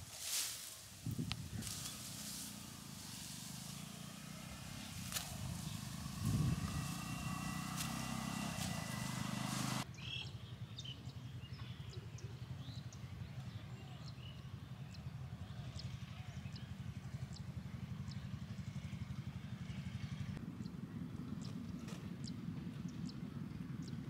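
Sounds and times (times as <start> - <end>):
low fluttering rumble: 0.0 - 9.8.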